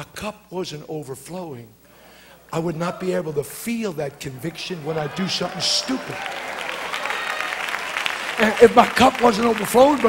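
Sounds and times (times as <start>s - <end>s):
crowd applauding: 4.3s - 10.0s.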